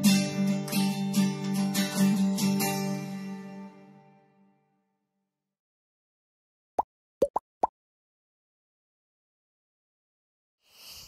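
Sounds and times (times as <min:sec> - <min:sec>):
cartoon bloop pops: 0:07.2 - 0:07.7.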